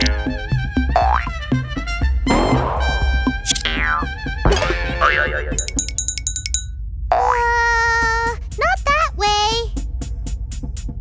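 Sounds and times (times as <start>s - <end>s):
cartoon boing sound effects: 0.0s - 1.4s, 3.5s - 5.8s
background music: 0.0s - 6.7s.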